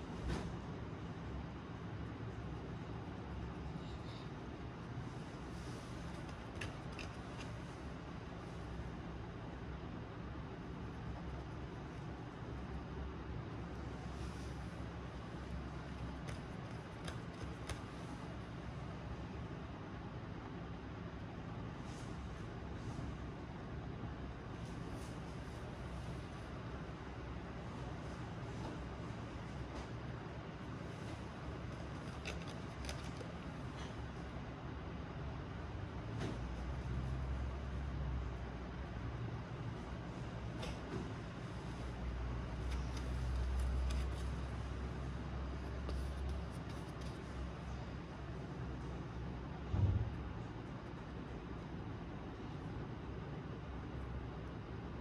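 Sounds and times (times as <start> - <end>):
steady background noise: 0.0 - 55.0.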